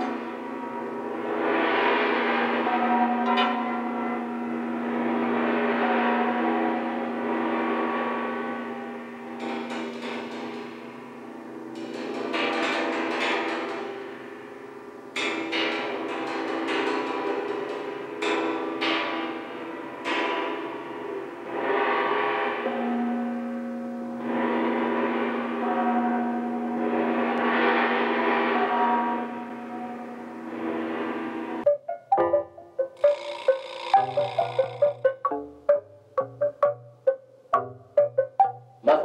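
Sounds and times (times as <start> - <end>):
gong-like ringing tones: 0.0 - 12.4, 17.4 - 39.0.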